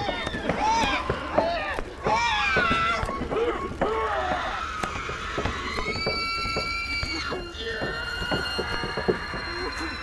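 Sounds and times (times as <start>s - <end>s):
long held high tones: 6.0s - 10.0s.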